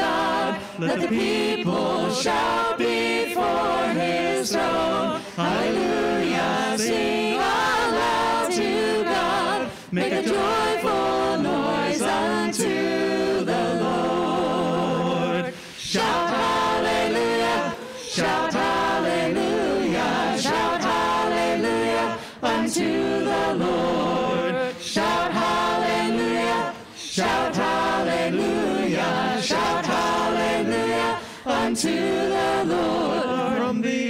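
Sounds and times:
vocal group singing in harmony: 0.0s - 34.0s.

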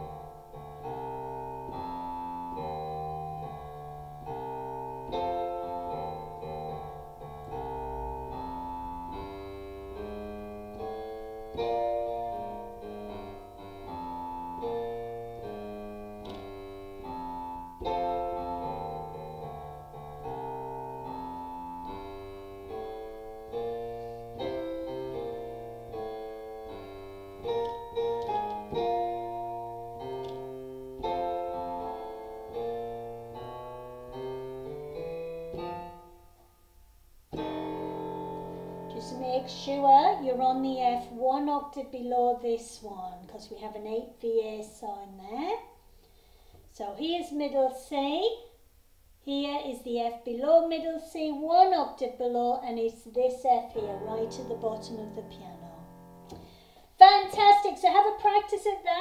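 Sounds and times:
low piano note: 0.0s - 36.6s, 37.3s - 40.4s, 53.7s - 56.6s
jazz piano piece: 0.0s - 44.2s, 50.1s - 59.0s.

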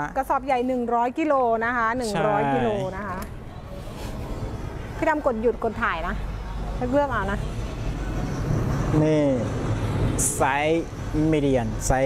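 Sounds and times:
woman speaking: 0.0s - 3.3s, 5.0s - 6.2s, 6.8s - 7.5s.

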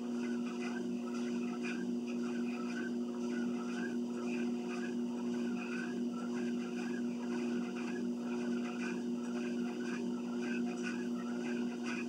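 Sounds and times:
treadmill motor humming: 0.0s - 12.0s
wavering high whine: 0.0s - 12.0s.

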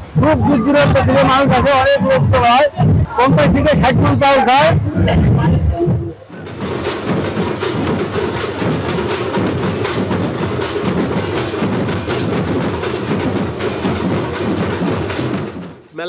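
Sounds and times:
barrel drums beaten in rhythm: 0.0s - 15.9s.

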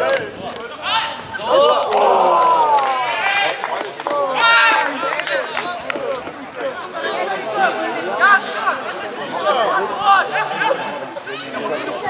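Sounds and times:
voices shouting: 0.0s - 12.0s
long drawn-out falling shout: 0.7s - 12.0s.

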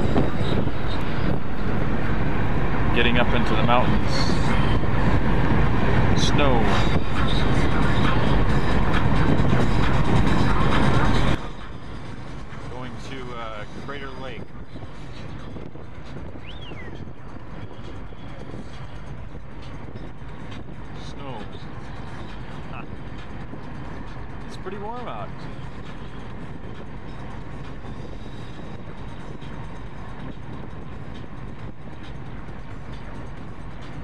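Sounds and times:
road and engine noise in car: 0.0s - 34.0s.

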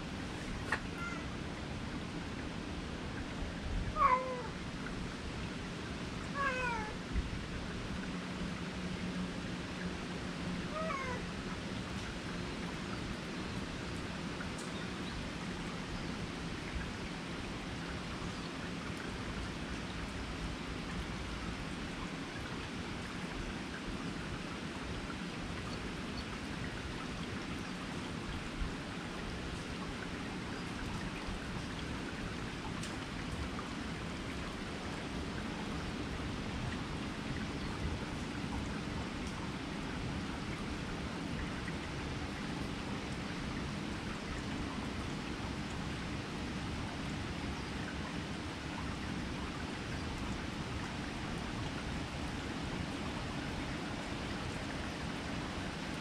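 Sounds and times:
cat meowing: 0.7s - 1.3s, 4.0s - 4.6s, 6.4s - 7.0s, 10.7s - 11.3s.

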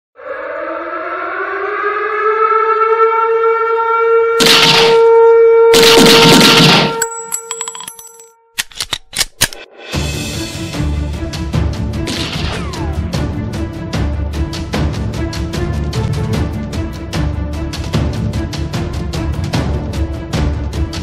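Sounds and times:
siren-like tone: 0.2s - 8.6s
sharp cracks: 4.4s - 5.1s, 5.8s - 7.0s
loud noise blasts: 4.4s - 7.0s.

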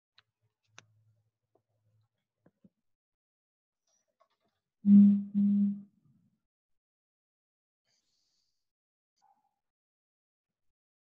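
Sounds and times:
person humming: 4.9s - 5.8s.

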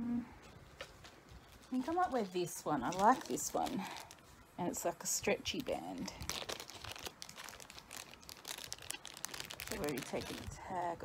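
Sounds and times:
plastic bag crinkling: 0.7s - 10.8s.

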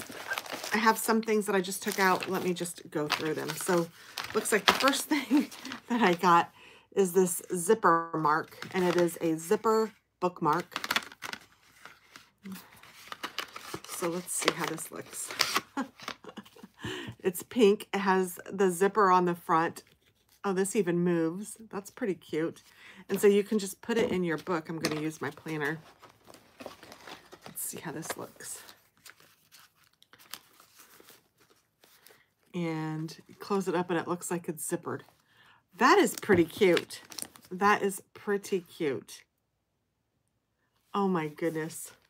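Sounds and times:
cardboard box rustling: 0.0s - 0.7s, 24.4s - 28.4s
paper rustling: 0.0s - 1.0s, 1.6s - 6.2s, 8.5s - 9.2s, 10.5s - 16.7s, 23.2s - 32.3s.

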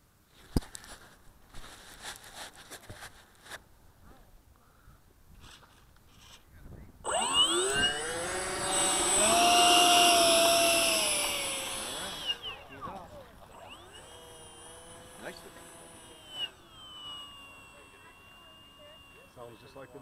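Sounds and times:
faint rustling: 0.3s - 6.9s
electric ducted fan whine: 6.9s - 20.0s.

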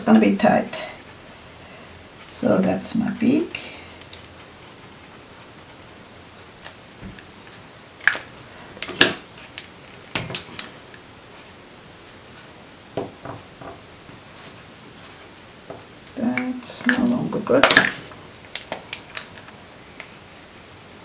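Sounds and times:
plastic caps snapping on and off: 16.3s - 20.1s.

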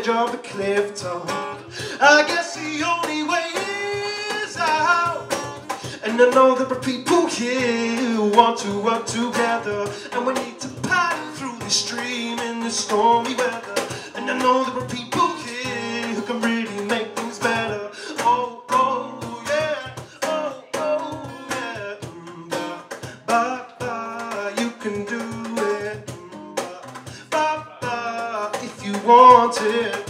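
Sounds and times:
acoustic guitar strumming: 0.0s - 30.0s
man singing: 0.0s - 30.0s.

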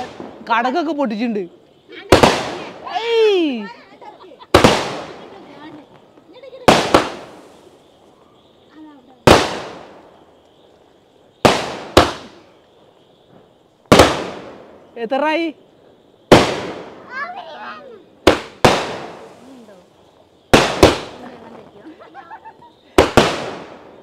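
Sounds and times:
firework bangs with echo: 2.0s - 2.9s, 4.5s - 6.0s, 6.6s - 7.5s, 9.2s - 10.2s, 11.4s - 12.5s, 13.9s - 14.8s, 16.3s - 17.5s, 18.2s - 19.5s, 20.4s - 21.4s, 22.9s - 24.0s.

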